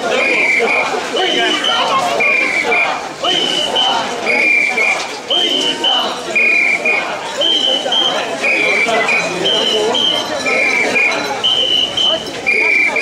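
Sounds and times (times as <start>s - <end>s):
people chanting in rhythm: 0.0s - 13.0s
whistles blown to the beat: 0.1s - 2.8s, 3.4s - 13.0s.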